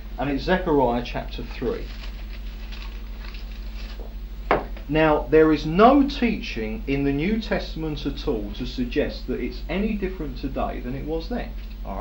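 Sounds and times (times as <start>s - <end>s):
steady low hum: 0.0s - 12.0s
man talking: 0.2s - 1.9s, 4.9s - 12.0s
faint rustling and handling noise: 0.8s - 4.9s.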